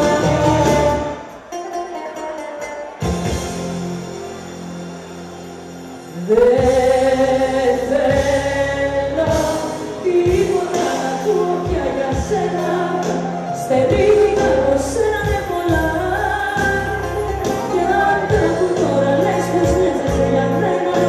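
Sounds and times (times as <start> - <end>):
bass line: 0.0 - 1.2, 3.2 - 21.0
woman singing into microphone: 6.1 - 21.0.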